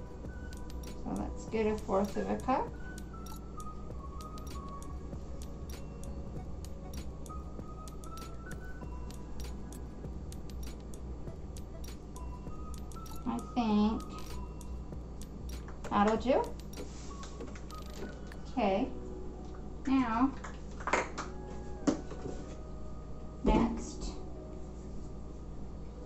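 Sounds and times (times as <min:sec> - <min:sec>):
low hum: 0:00.0 - 0:19.7
soft background music: 0:00.0 - 0:26.0.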